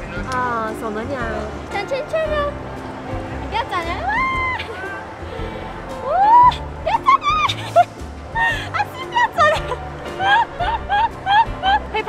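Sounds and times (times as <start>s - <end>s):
amusement park music: 0.0s - 12.0s.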